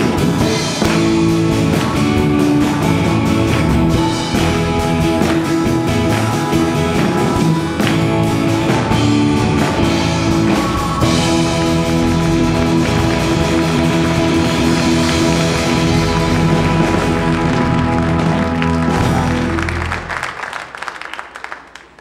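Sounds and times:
live band holding chord: 0.0s - 20.9s
people clapping: 0.0s - 22.0s.

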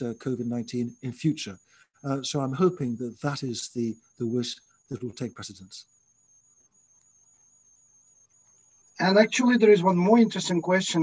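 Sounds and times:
faint high-pitched tone: 0.0s - 5.9s, 8.2s - 11.0s.

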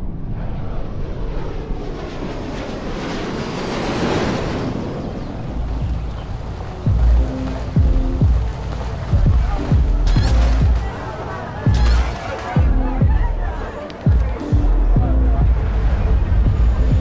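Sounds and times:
jet plane passing overhead: 0.0s - 14.6s, 15.2s - 17.0s
hip-hop beat with sliding bass: 9.1s - 10.9s.

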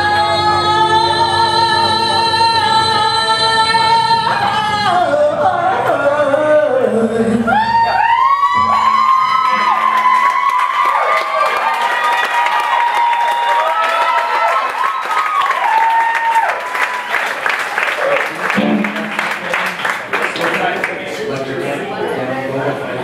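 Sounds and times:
audience cheering and whooping: 7.5s - 19.9s
live band song: 8.6s - 10.8s, 18.4s - 20.1s
applause: 9.4s - 21.4s.

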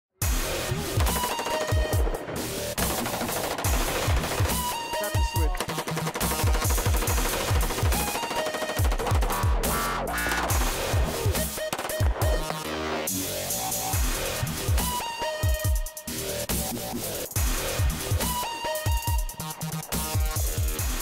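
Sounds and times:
electronic dance music: 0.2s - 21.0s
rapid rifle fire: 1.0s - 9.6s, 11.5s - 12.4s.

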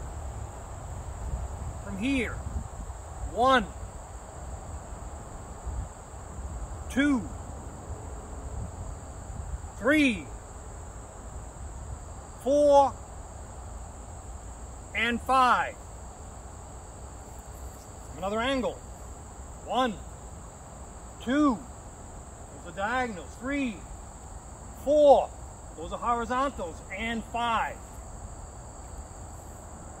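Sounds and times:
insects droning: 0.0s - 30.0s.

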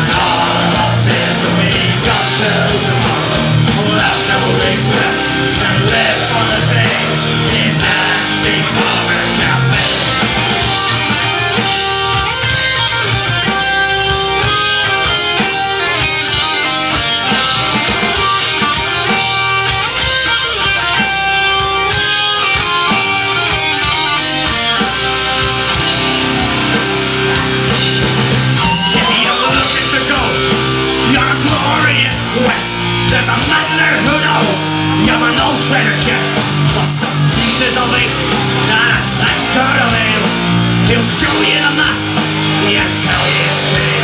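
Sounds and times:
drums: 0.0s - 44.0s
electric guitars: 0.0s - 44.0s.

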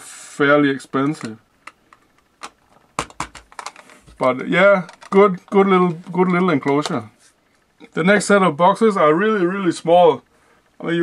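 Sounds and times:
plastic boxes clicking and tapping: 1.0s - 5.6s.

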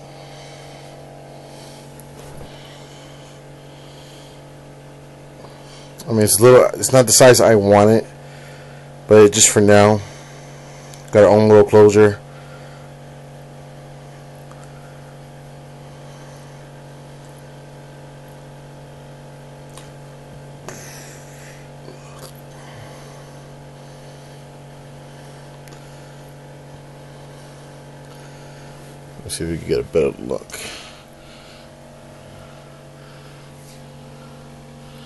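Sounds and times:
steady electrical hum: 0.0s - 35.0s
faint rustles: 0.1s - 4.4s.

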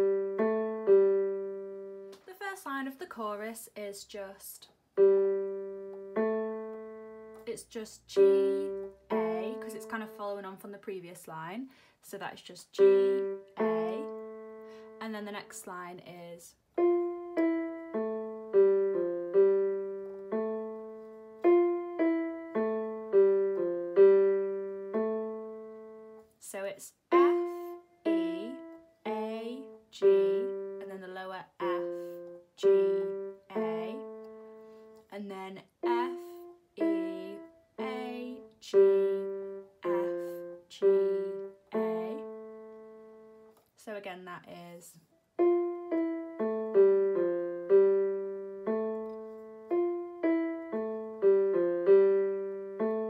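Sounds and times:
keyboard piano melody: 0.0s - 2.2s, 4.9s - 10.6s, 12.7s - 15.6s, 16.7s - 26.4s, 27.0s - 43.7s, 45.2s - 53.0s.

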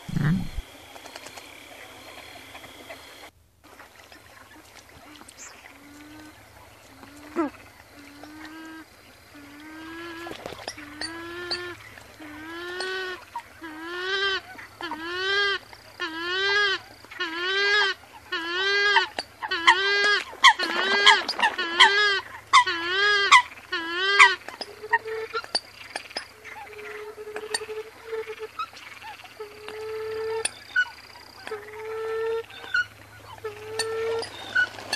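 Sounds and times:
bird nasal honking call: 0.0s - 0.6s.

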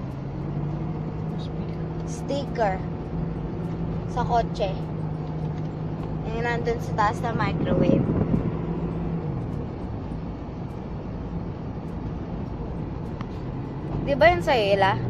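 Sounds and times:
car engine drone: 0.0s - 15.0s
road noise: 0.0s - 15.0s.

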